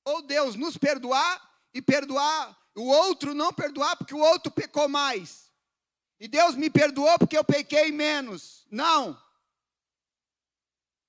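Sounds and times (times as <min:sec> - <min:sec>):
man speaking: 0:00.0 - 0:05.6, 0:06.2 - 0:09.4.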